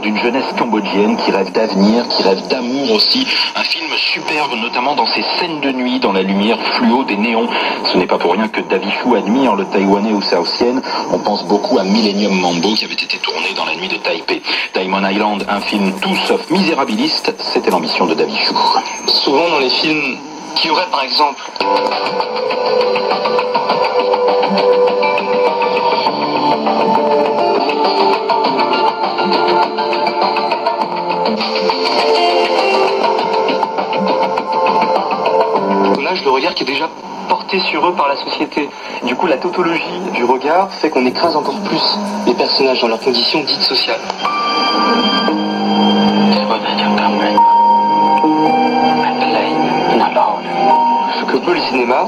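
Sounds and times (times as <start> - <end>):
music through radio speaker: 0.0 - 52.0
static clicks: 11.0 - 24.2, 32.9 - 44.3.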